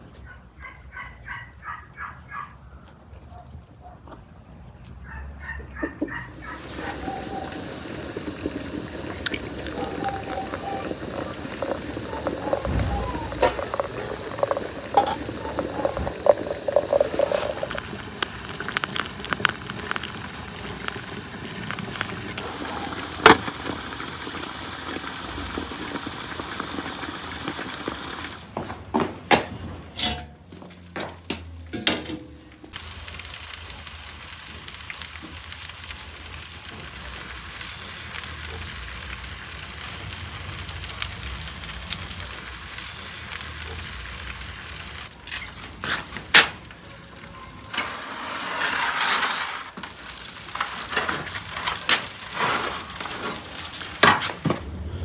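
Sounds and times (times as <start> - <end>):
hot water pouring into teapot: 6.1 - 28.5, 32.7 - 45.1, 49.4 - 53.9
meat sizzling: 6.1 - 28.5, 32.7 - 45.1, 49.4 - 54.1.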